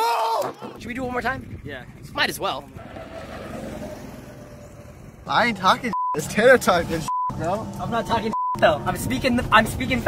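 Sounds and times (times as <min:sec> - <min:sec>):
small engine running: 0:01.4 - 0:05.8.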